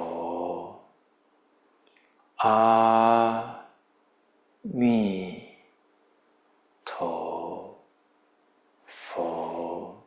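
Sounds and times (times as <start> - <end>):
man chanting slowly: 0.0 - 0.9, 2.4 - 3.8, 6.8 - 7.8, 8.9 - 10.0.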